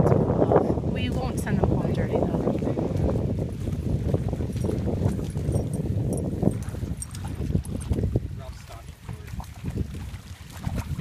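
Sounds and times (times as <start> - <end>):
dogs splashing through puddle: 2.2 - 11.0.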